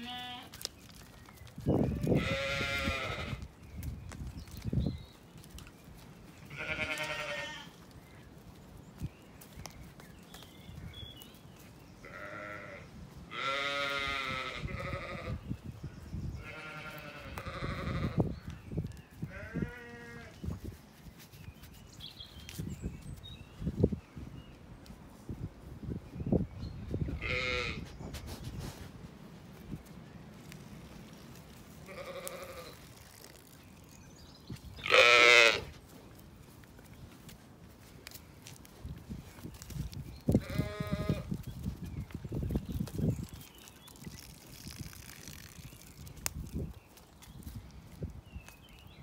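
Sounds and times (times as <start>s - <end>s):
lamb bleating: 0.0s - 0.5s, 2.0s - 3.4s, 6.5s - 7.7s, 12.0s - 15.4s, 16.4s - 18.2s, 27.2s - 27.8s, 31.9s - 32.8s, 34.8s - 35.7s, 40.4s - 41.3s.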